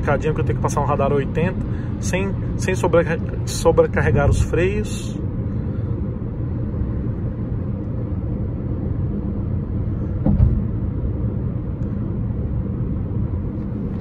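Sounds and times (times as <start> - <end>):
engine and road noise drone: 0.0 - 14.0
brief thump: 10.2 - 10.8.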